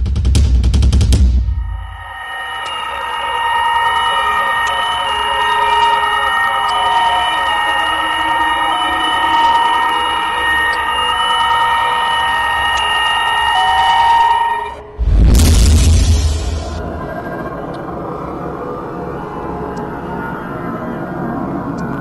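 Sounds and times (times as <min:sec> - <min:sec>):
high synthesizer drone: 0:01.6 - 0:21.8.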